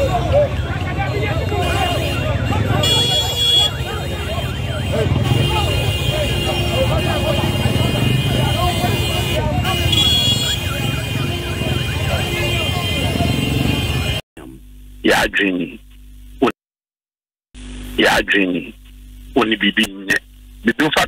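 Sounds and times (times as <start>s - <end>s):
crowd shouting and talking: 0.0s - 14.2s
motorcycle engines running: 0.0s - 14.2s.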